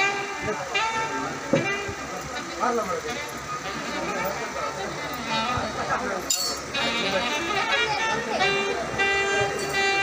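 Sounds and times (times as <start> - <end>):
murmur of voices: 0.0 - 10.0
wind instrument horn-like notes: 0.0 - 10.0.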